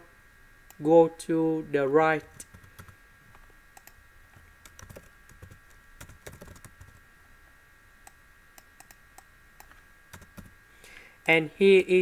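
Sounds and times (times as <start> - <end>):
faint keyboard typing: 2.2 - 7.0, 8.7 - 10.6.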